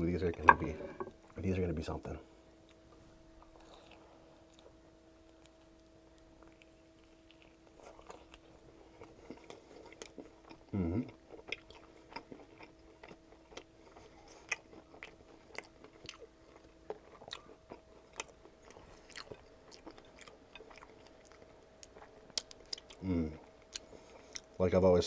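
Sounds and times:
close chewing with mouth clicks: 2.6s - 24.6s.

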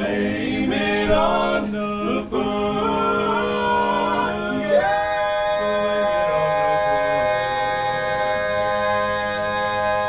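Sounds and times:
male quartet singing a cappella: 0.0s - 10.0s.

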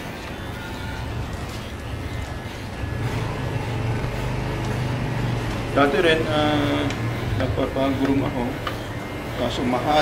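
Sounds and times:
electric pet clipper buzzing: 3.0s - 7.4s.

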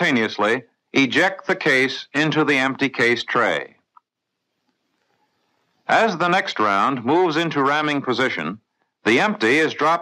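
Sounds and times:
man narrating: 0.0s - 3.7s, 5.9s - 10.0s.

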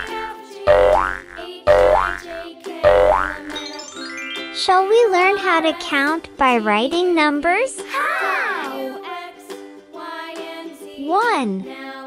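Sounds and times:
bouncy children's music: 0.0s - 12.0s
cartoon boing effect: 0.7s - 2.2s, 2.9s - 3.5s.

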